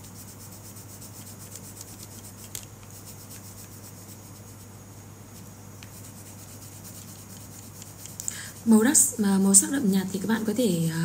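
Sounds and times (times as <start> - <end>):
colored pencil shading on paper: 0.0 - 4.7, 5.4 - 9.6.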